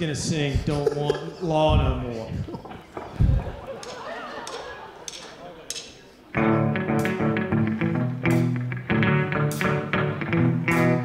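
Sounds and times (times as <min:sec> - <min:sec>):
rock band playing loudly: 0:06.4 - 0:11.0.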